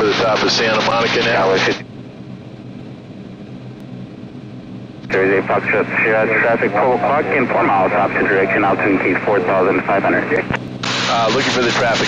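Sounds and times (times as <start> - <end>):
aircraft engine and propeller drone: 0.0 - 12.0.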